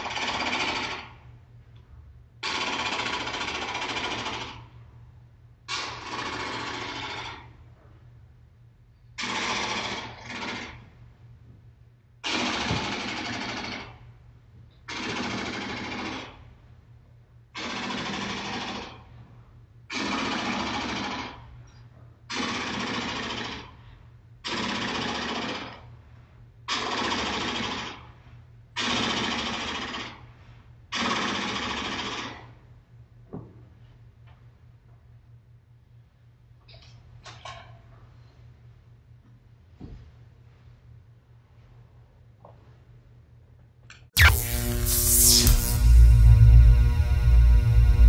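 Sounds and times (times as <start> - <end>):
rapid-fire toy gunfire bursts: 0.0 - 1.1, 2.4 - 4.6, 5.7 - 7.4, 9.2 - 10.7, 12.2 - 13.9, 14.9 - 16.4, 17.6 - 19.0, 19.9 - 21.4, 22.3 - 23.7, 24.5 - 25.8, 26.7 - 28.0, 28.8 - 30.1, 31.0 - 32.4.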